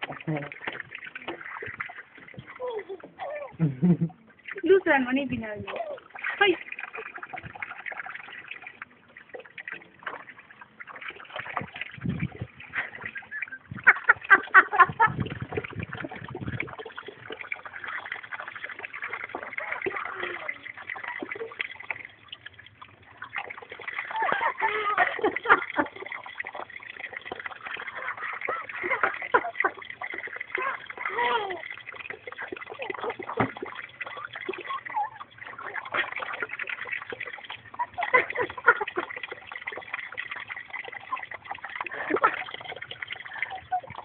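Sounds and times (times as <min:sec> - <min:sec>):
tap water running into tub: 0:00.0 - 0:44.0
toddler splashing water: 0:00.0 - 0:44.0.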